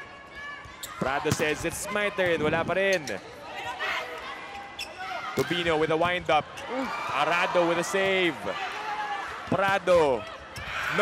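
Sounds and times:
arena crowd murmur: 0:03.2 - 0:11.0.

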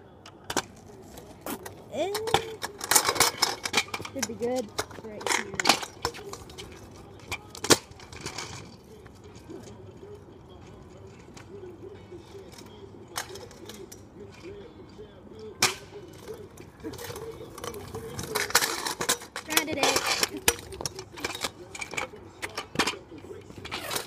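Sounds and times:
faint voices: 0:00.0 - 0:24.0
kick scooter clattering on pavement: 0:00.5 - 0:14.6, 0:15.6 - 0:24.0.

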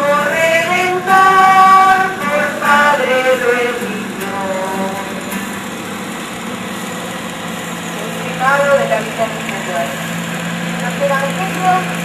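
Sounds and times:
car engine droning: 0:00.0 - 0:12.0.

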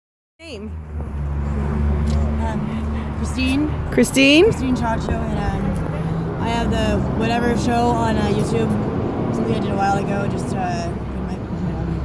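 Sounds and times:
vehicle engine idling: 0:00.9 - 0:12.0.

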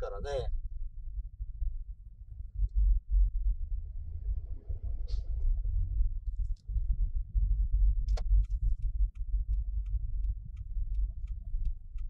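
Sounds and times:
car driving rumble: 0:02.8 - 0:12.0
turn signal ticking: 0:08.0 - 0:12.0.

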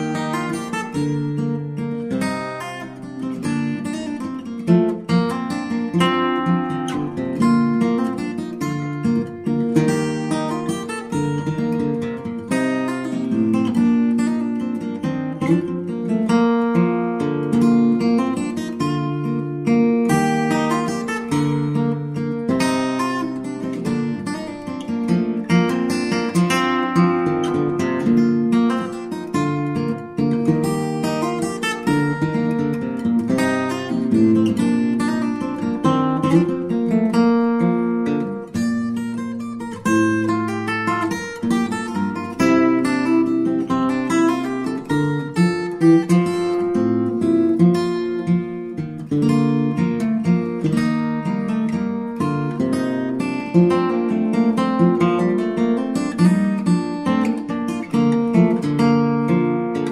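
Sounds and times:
acoustic guitar playing: 0:00.0 - 0:59.9.

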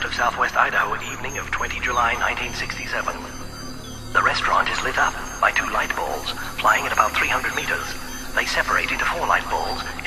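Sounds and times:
low drone: 0:00.0 - 0:10.0
processed voice sample: 0:00.0 - 0:10.0.

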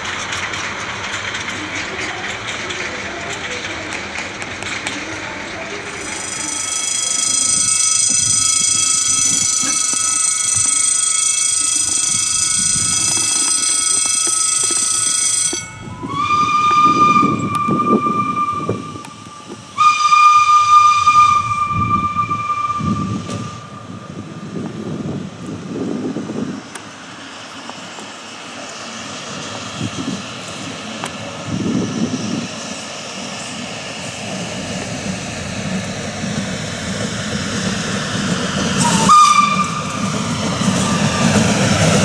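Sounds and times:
steady high-pitched tone: 0:05.7 - 0:20.0
steam whistle blasts: 0:06.0 - 0:24.0, 0:38.8 - 0:40.2.

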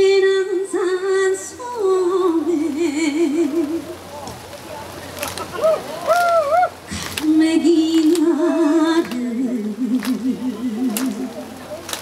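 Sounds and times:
woman singing into microphone: 0:00.0 - 0:04.0, 0:06.9 - 0:11.5.

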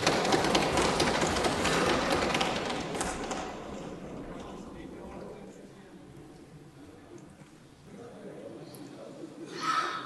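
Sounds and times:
people thumping desks: 0:00.0 - 0:04.6.

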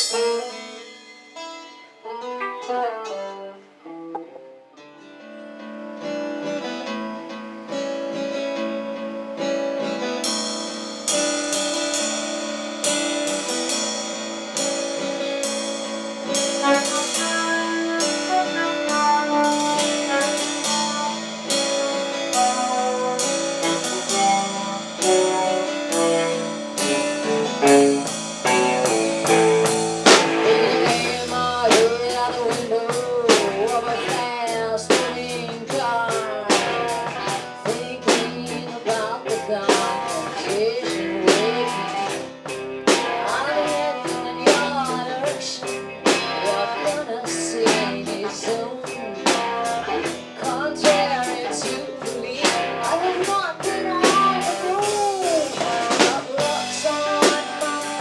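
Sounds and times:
drums and cymbals: 0:00.0 - 0:01.8, 0:09.9 - 0:58.0
bass guitar: 0:00.0 - 0:58.0
electric and acoustic guitars: 0:00.0 - 0:58.0.

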